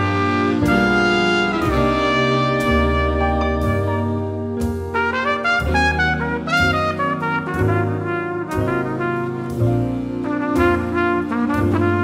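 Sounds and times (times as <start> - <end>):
double bass notes: 0.0 - 12.0
trumpet playing jazz melody: 0.0 - 12.0.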